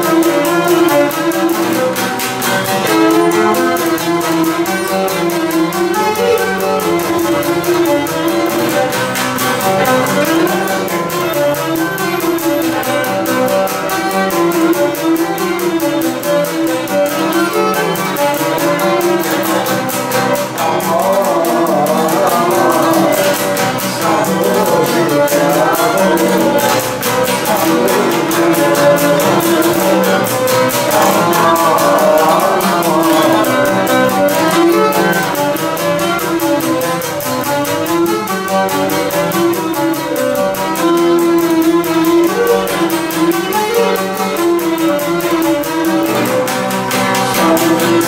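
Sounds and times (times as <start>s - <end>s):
bowed lyra melody: 0.0s - 48.0s
plucked lute rhythm: 0.0s - 48.0s.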